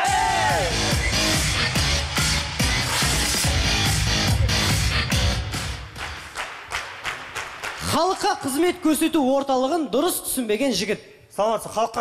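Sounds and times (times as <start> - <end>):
music: 0.0 - 7.9
audience clapping: 4.9 - 8.3.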